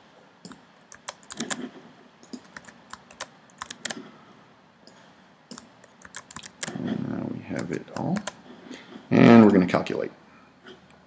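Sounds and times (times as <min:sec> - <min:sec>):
keyboard keystrokes and clicks: 0:00.4 - 0:01.6, 0:02.2 - 0:04.0, 0:04.8 - 0:06.8, 0:07.6 - 0:08.4.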